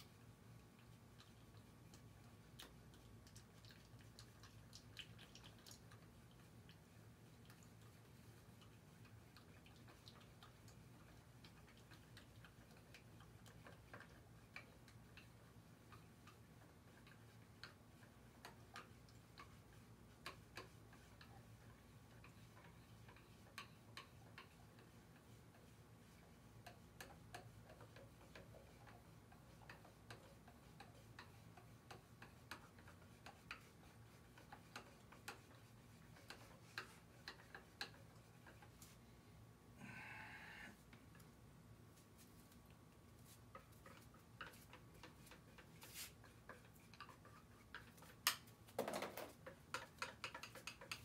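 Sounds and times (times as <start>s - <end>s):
stick stirring paint in a tin: 0.0s - 39.1s, 40.8s - 51.0s
low steady hum: 0.0s - 49.6s.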